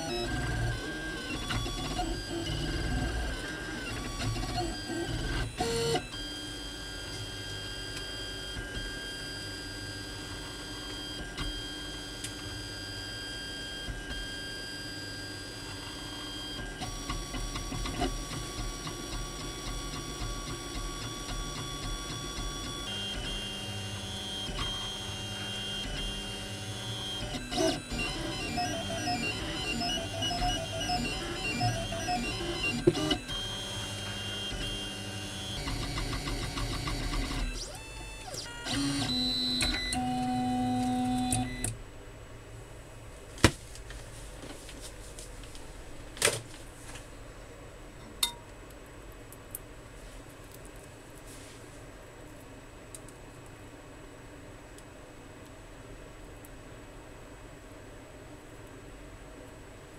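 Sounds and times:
stepper motors whining: 19.4 - 41.7.

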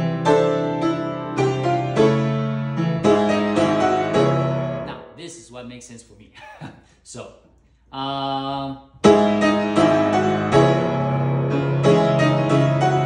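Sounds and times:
grand piano chords and melody: 0.0 - 5.0, 9.0 - 13.0.

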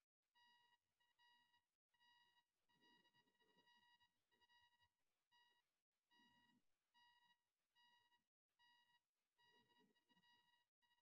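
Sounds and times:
faint electronic beep: 0.0 - 11.0.

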